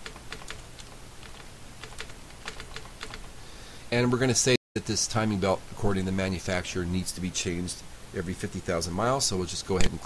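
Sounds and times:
keyboard keystrokes: 0.0 - 3.3.

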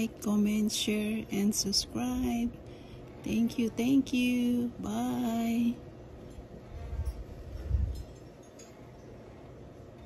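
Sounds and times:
wind buffeting microphone: 6.7 - 8.2.

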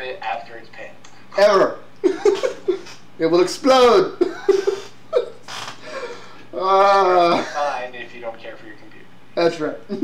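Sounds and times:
man laughing: 2.0 - 3.0, 3.9 - 7.8.

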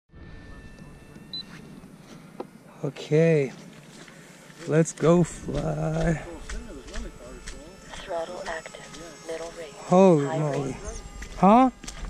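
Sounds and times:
faint high whine: 0.1 - 12.0
high electronic beep: 0.4 - 1.6.

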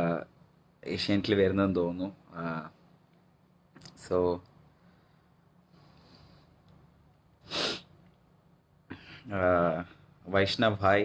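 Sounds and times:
man's sharp burst of breath: 7.4 - 7.9.

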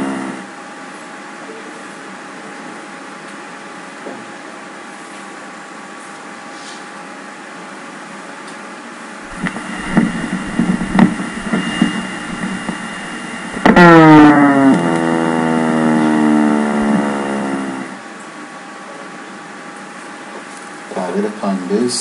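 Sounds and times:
high-pitched falling whine: 0.0 - 0.5, 9.3 - 18.1
irregular sharp pops: 9.3 - 15.1.

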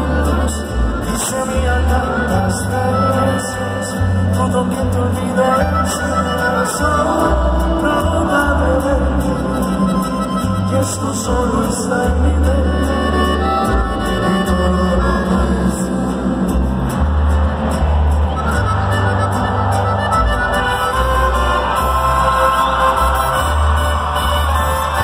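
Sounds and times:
live band playing ranchero music: 0.0 - 25.0.

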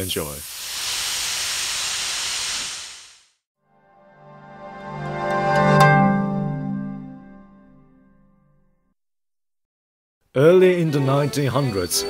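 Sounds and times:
steam hissing: 0.0 - 3.4.

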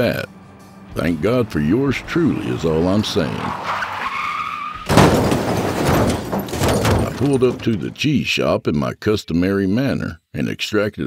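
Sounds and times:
car tyres squealing: 2.0 - 7.8
loud car skid: 2.3 - 6.6.

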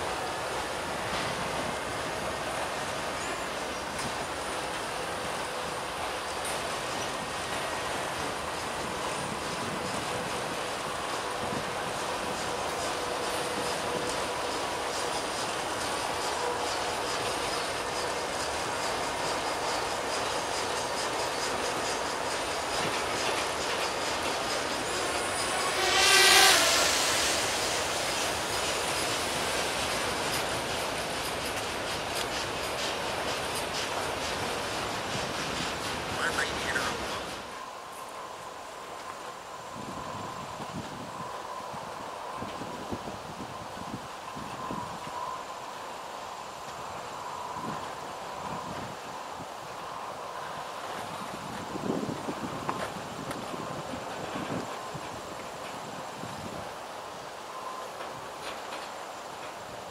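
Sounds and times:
wheels clicking over rail joints: 0.0 - 38.2, 50.4 - 59.9
freight train rolling past: 0.0 - 59.9
faint wheel squealing: 23.9 - 28.4.

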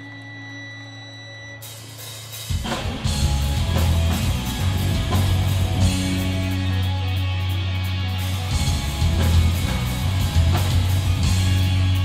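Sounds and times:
thin high whine: 0.0 - 2.5.

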